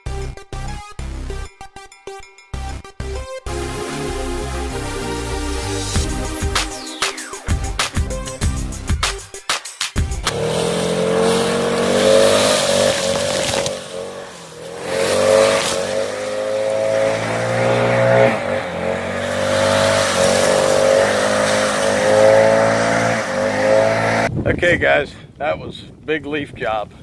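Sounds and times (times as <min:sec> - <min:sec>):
music: 0:00.0 - 0:10.4
leaf blower running: 0:10.2 - 0:24.2.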